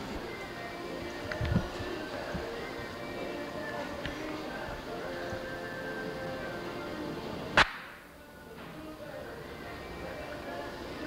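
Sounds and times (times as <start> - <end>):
background music: 0.0 - 11.0
short sharp crack: 7.6 - 8.0.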